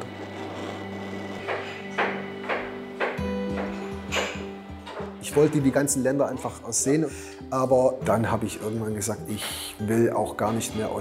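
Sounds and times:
background music low tones: 0.0s - 11.0s.

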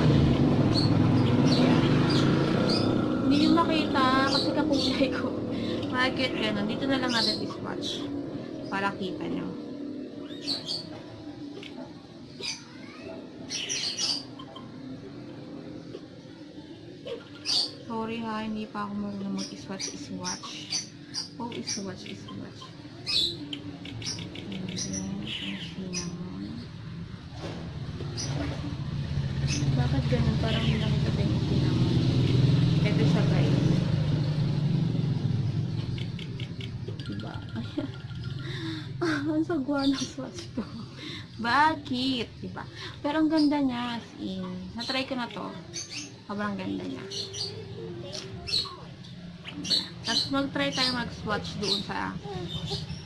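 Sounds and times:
vehicle engine rumbling: 0.0s - 13.5s, 20.8s - 53.0s
birds chirping: 0.0s - 53.0s.

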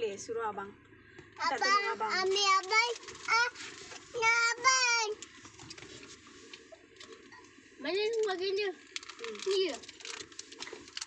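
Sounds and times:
small clicks and rustling: 1.2s - 11.0s.

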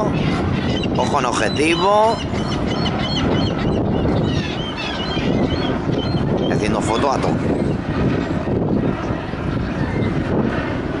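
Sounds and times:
birds calling: 0.0s - 10.7s
low background rumble: 0.0s - 11.0s.

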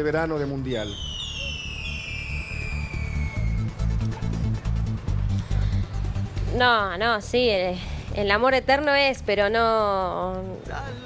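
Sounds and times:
descending whistle: 0.8s - 3.9s
music with low pulsing beat: 1.2s - 11.0s.

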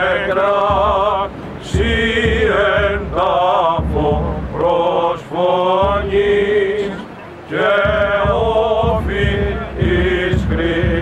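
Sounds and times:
male voices chanting: 0.0s - 11.0s.

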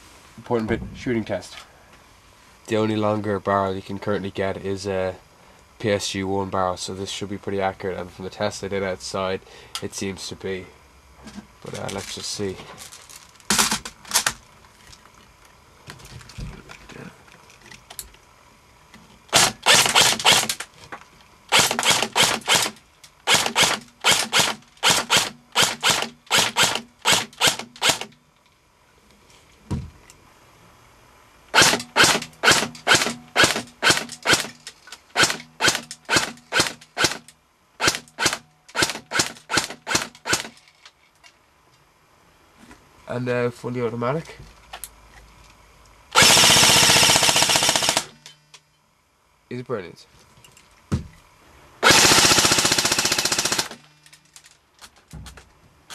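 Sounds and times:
airsoft rifle shots: 19.3s - 20.7s, 21.5s - 28.1s, 31.5s - 40.5s, 46.2s - 48.2s, 51.8s - 53.8s.

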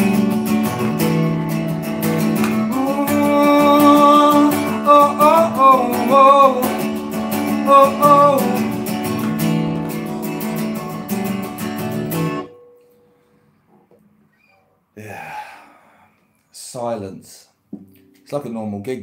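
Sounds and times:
acoustic guitar strumming: 0.0s - 14.6s
man singing wordless notes: 2.6s - 9.0s.

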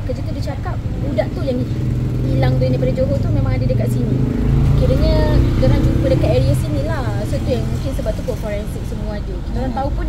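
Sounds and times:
low engine rumble: 0.0s - 10.0s
woman talking: 0.0s - 10.0s.

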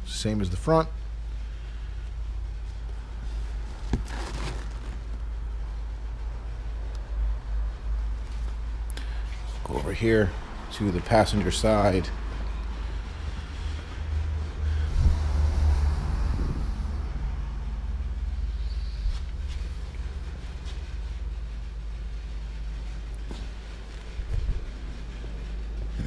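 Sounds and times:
workshop background rumble: 0.0s - 26.0s.

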